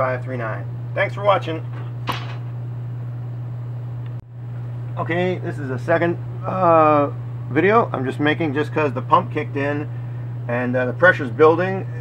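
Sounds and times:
electric pump motor humming: 0:00.0 - 0:12.0.

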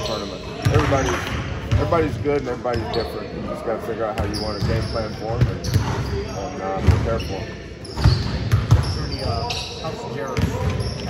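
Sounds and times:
basketballs bouncing on gym floor: 0:00.6 - 0:02.9, 0:04.1 - 0:09.6, 0:10.3 - 0:11.0.

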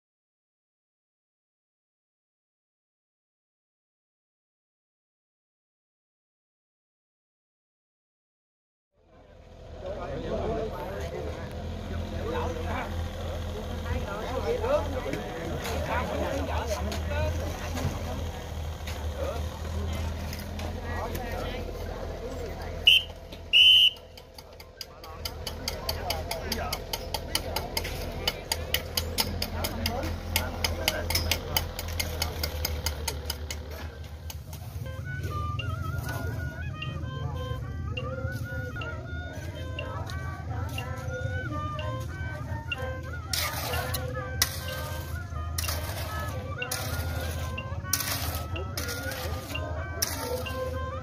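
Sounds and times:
low engine rumble: 0:09.0 - 0:51.0
people talking: 0:09.1 - 0:51.0
fast clicking beat: 0:23.9 - 0:34.6
wavering high melody: 0:33.1 - 0:51.0.

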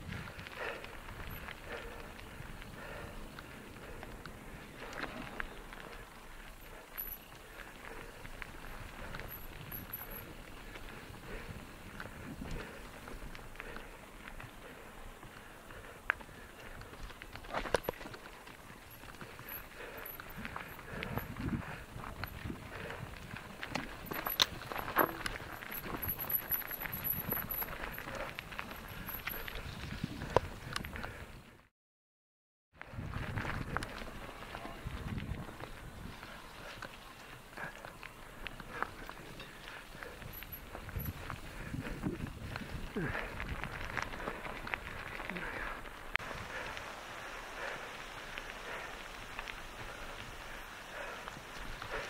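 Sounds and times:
tyres crunching over gravel: 0:00.0 - 0:30.8, 0:33.0 - 0:52.0
bike rattling over bumps: 0:00.0 - 0:31.2, 0:32.9 - 0:52.0.

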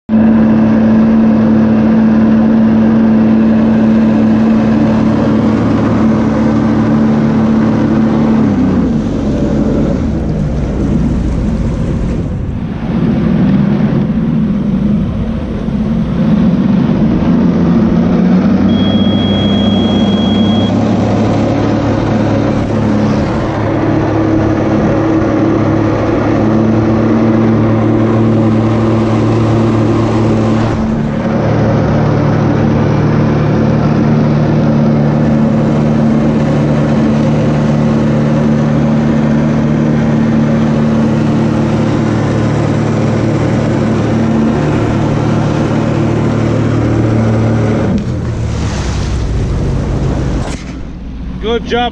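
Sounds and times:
watercraft engine running: 0:00.1 - 0:51.9
rushing water and spray: 0:00.6 - 0:51.3.

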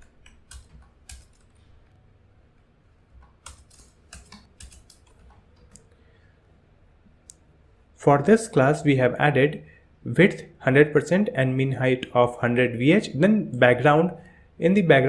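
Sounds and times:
faint keyboard typing: 0:00.0 - 0:06.3.

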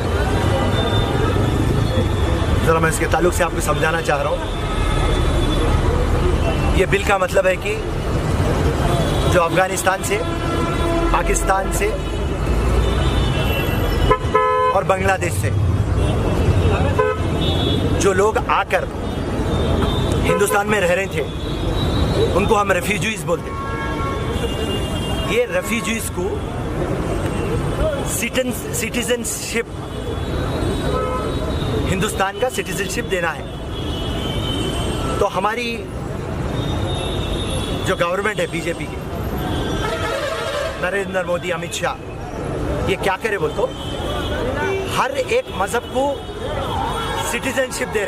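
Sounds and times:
crowd: 0:00.0 - 0:48.0
traffic rumble: 0:00.0 - 0:48.0
man speaking: 0:11.1 - 0:12.1, 0:25.3 - 0:26.4
vehicle horn toot: 0:13.0 - 0:14.8.

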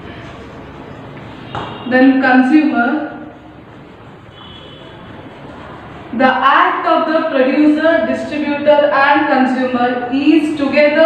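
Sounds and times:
room background noise: 0:00.0 - 0:11.0
woman speaking: 0:01.9 - 0:03.3, 0:06.1 - 0:11.0.

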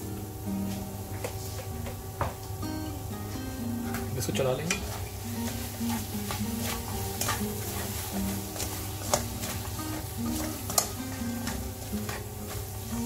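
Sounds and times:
background music: 0:00.0 - 0:13.0
light sizzle: 0:00.0 - 0:13.0
spatula scraping a wok: 0:04.7 - 0:13.0.

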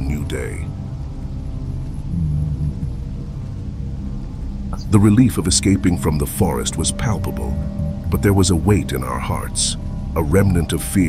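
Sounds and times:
dark ambient drone music: 0:00.0 - 0:11.0.

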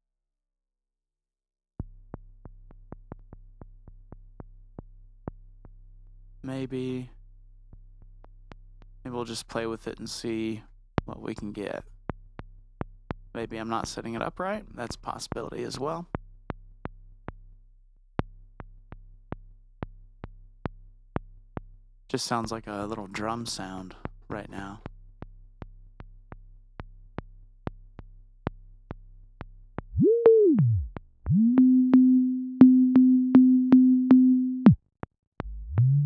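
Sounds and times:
clicky synthesizer blips: 0:29.9 - 0:34.8.

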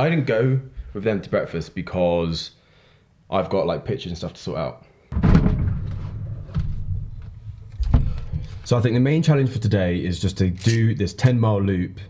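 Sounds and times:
knocks inside fridge: 0:05.2 - 0:07.0
low rumble: 0:05.2 - 0:08.6.

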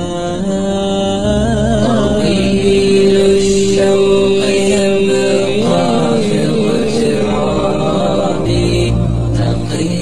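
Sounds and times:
deep steady hum: 0:01.2 - 0:10.0.

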